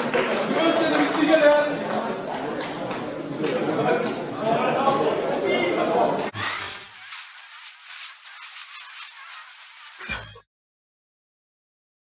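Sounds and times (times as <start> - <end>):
sparkler fizzing and crackling: 6.5 - 10.2.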